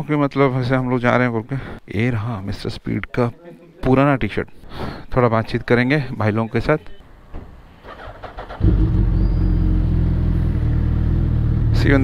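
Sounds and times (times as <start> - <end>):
motorcycle engine starting and idling: 7.8 - 12.0.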